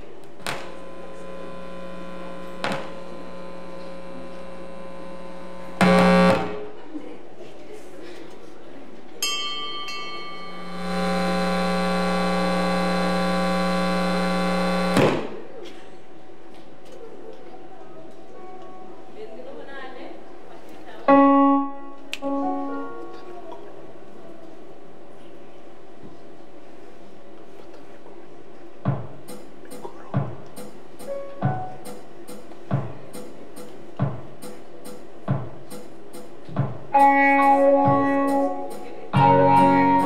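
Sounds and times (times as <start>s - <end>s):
electronic keyboard organ notes: 0.8s - 6.6s, 10.5s - 15.0s, 21.1s - 23.2s, 37.0s - 40.0s.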